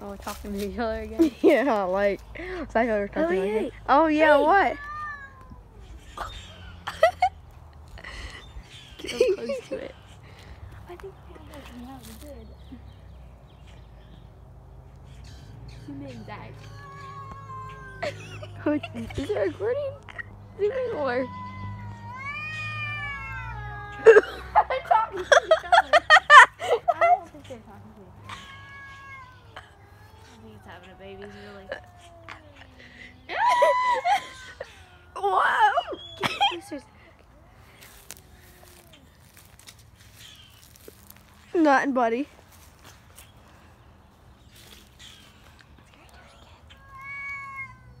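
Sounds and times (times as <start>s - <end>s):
cat yowling: 4.3s - 6.7s, 15.3s - 24.6s, 28.3s - 36.8s, 46.1s - 48.0s.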